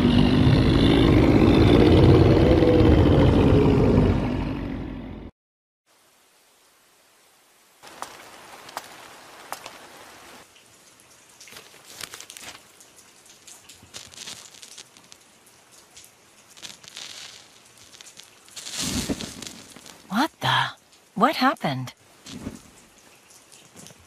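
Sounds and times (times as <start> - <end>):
steady light hiss: 5.9 - 20.1
ticks and crackles: 10.6 - 20.1.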